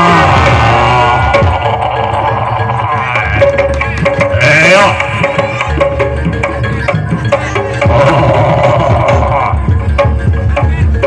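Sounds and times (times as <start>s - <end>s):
percussion: 0.0s - 11.0s
hand drums beating fast rhythm: 0.6s - 11.0s.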